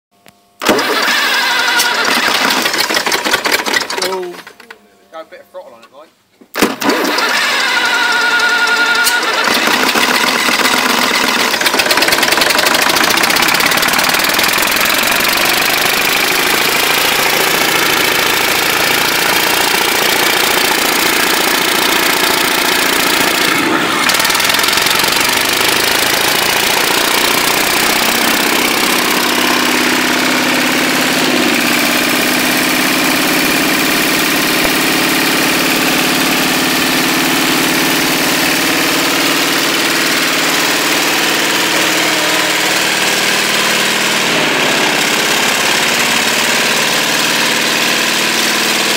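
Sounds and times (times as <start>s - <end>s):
diesel engine running loudly: 0.6s - 4.6s, 6.6s - 48.9s.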